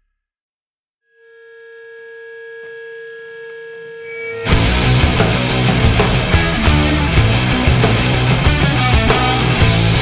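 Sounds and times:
synthesizer note held: 0:01.1 - 0:04.6.

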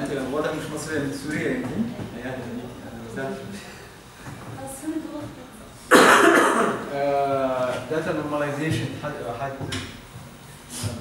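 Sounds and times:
person coughing: 0:05.9 - 0:06.8.

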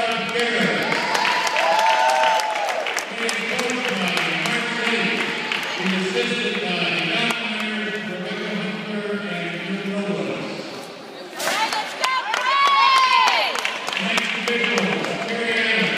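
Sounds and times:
voices in a gymnasium: 0:00.0 - 0:15.9.

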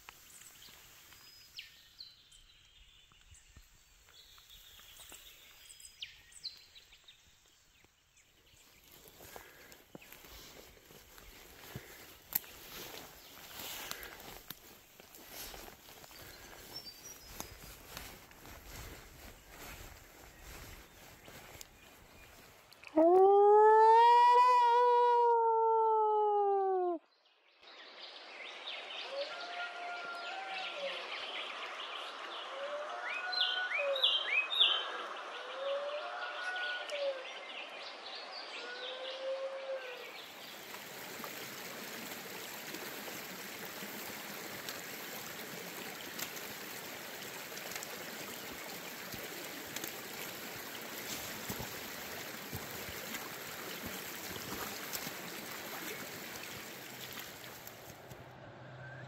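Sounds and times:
birds chirping: 0:00.2 - 0:22.8
creek rushing: 0:08.8 - 0:22.7, 0:40.0 - 0:59.0
dingo howling: 0:23.0 - 0:27.0.

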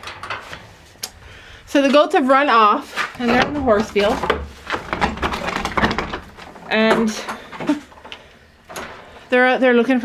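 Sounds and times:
wooden door knocking and scraping: 0:03.2 - 0:07.8.

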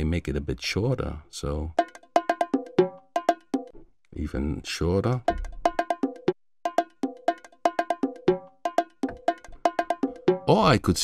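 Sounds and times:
bongo drum hits: 0:01.8 - 0:03.7, 0:05.2 - 0:10.8.

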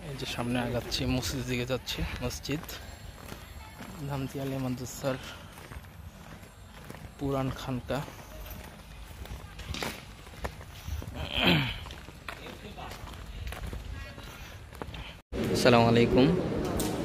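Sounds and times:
footsteps on paved path: 0:00.0 - 0:15.8.

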